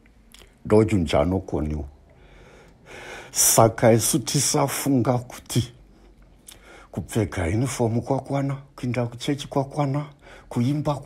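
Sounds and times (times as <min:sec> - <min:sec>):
breath intake: 0:02.2 - 0:03.4
man preaching: 0:03.3 - 0:05.8, 0:07.0 - 0:11.0.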